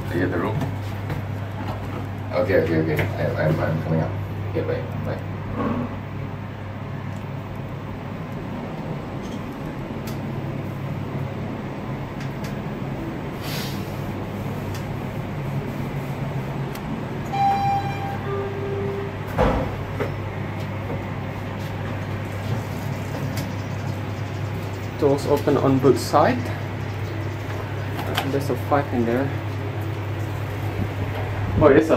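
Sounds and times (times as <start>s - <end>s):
elevator hum: 0.0s - 31.9s
elevator doors sliding open: 16.1s - 23.6s
two-note arrival chime: 17.3s - 19.3s
elevator car knock: 19.2s - 21.1s.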